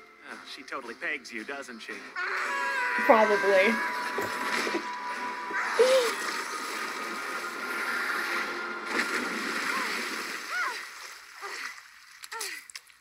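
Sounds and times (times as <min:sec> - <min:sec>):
water splashing and sloshing: 0:03.0 - 0:13.0.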